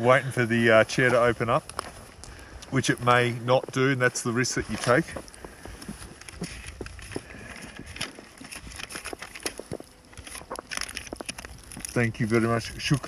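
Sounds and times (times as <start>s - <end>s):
banknotes and wrappers rustling: 0.3s - 13.0s.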